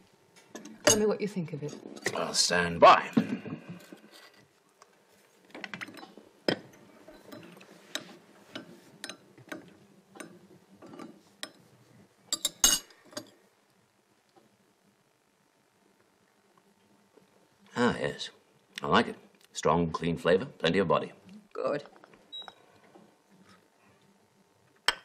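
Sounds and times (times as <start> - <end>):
china cups clinking: 12.3 - 13.3.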